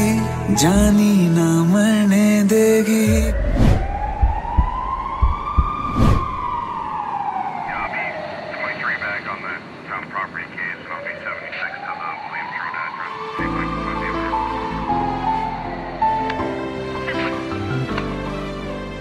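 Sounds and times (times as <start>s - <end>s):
siren wailing: 3.1s - 9.7s, 10.8s - 16.3s
faint voices: 7.7s - 14.2s.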